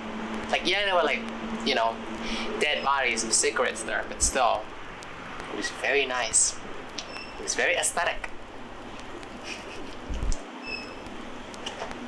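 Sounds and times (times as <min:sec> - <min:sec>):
outdoor background hiss: 0:00.0 - 0:12.0
high bird chirp: 0:10.6 - 0:11.0.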